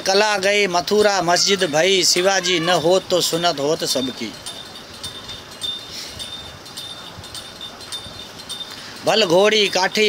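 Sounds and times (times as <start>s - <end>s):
light clicks and tinkles: 1.4s - 10.0s
thin high ringing tone: 1.4s - 10.0s.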